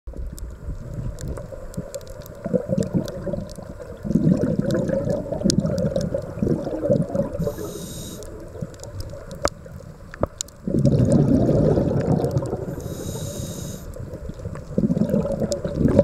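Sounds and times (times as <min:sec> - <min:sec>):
underwater bubbles gurgling: 0:00.1 - 0:16.0.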